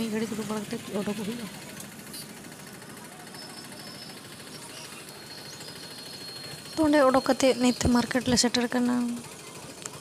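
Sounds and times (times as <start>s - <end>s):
faint voices: 0.0s - 10.0s
traffic noise: 0.0s - 10.0s.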